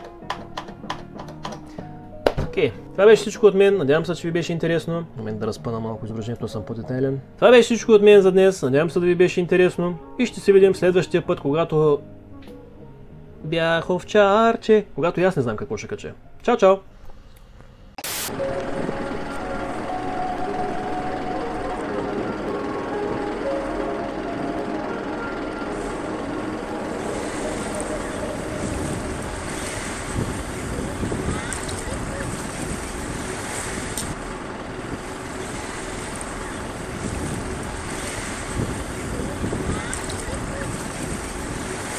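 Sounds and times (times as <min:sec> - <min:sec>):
wind on microphone: 0:26.8 - 0:34.2, 0:34.8 - 0:41.9.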